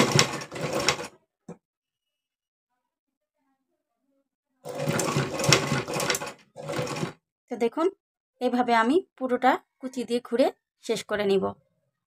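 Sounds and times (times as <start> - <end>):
sewing machine stitching: 0.0 - 1.2, 4.7 - 7.2.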